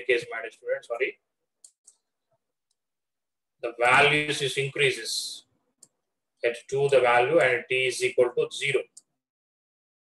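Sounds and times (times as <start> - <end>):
person speaking: 3.6 - 5.5, 6.4 - 9.1.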